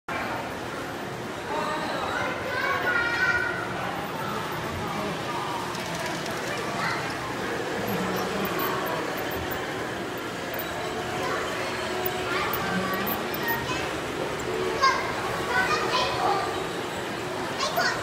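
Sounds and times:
chatter of visitors: 0.1s - 18.0s.

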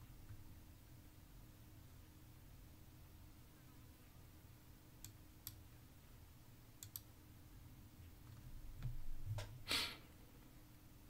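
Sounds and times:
faint mouse clicks: 5.0s - 5.6s, 6.8s - 7.1s.

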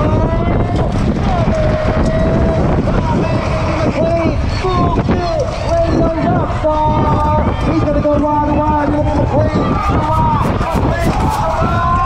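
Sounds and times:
wind buffeting microphone: 0.0s - 12.0s
announcer over public address: 1.3s - 12.0s.

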